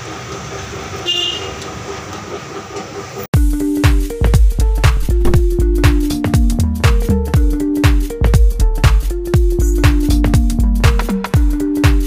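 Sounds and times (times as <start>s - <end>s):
electronic music with heavy bass: 3.7s - 12.0s.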